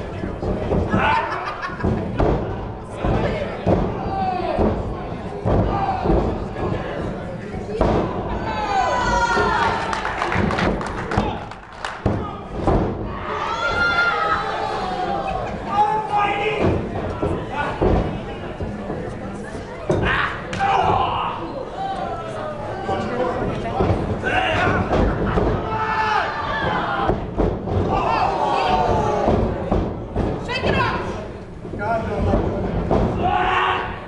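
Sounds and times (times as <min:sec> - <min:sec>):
heavy thuds of bodies hitting ring: 0:00.0 - 0:21.3, 0:22.8 - 0:34.0
crowd shouting and yelling: 0:07.8 - 0:18.6, 0:19.5 - 0:31.2, 0:33.0 - 0:34.0.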